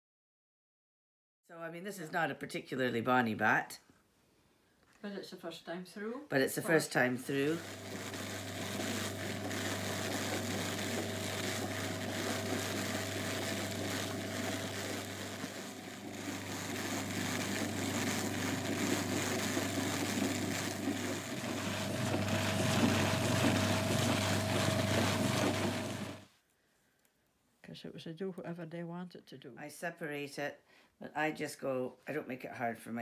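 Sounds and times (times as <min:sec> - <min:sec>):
drum carder humming: 0:07.3 - 0:26.2.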